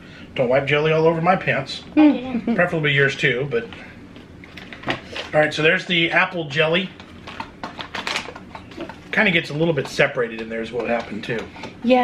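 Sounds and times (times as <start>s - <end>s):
packaging clicking and rustling: 7.0s - 9.0s.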